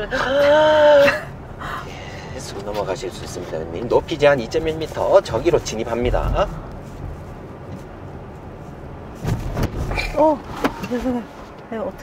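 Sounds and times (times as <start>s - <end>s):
car cabin rumble: 0.0s - 12.0s
short thumps: 9.2s - 11.2s.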